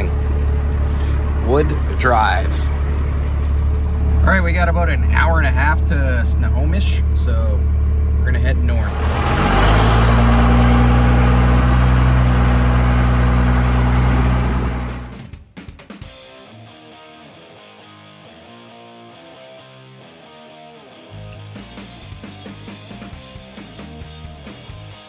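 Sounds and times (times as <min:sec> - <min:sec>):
pickup truck engine running: 0:00.0 - 0:15.2
music with drums and bass: 0:14.9 - 0:17.0, 0:21.4 - 0:25.0.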